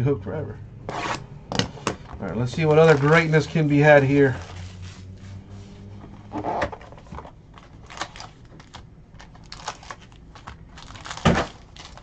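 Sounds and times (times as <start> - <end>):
card packs clicking and crinkling: 2.4 - 4.6, 6.7 - 12.0.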